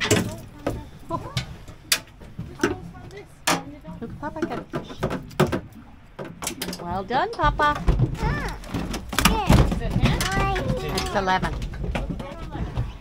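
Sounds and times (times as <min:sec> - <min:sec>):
knocks and thumps on boat rail: 0:00.0 - 0:13.0.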